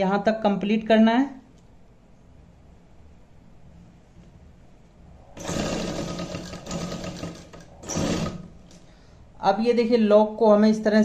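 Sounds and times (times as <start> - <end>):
sewing machine stitching: 5.4 - 8.8.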